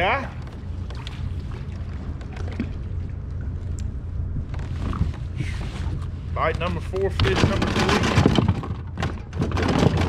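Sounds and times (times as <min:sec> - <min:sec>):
light water sounds: 0:00.0 - 0:07.3
wind rumble on microphone: 0:00.0 - 0:10.0.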